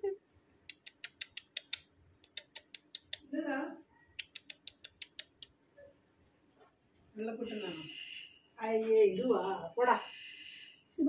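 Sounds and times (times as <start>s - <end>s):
rapid sharp clicks: 0.7s - 3.2s.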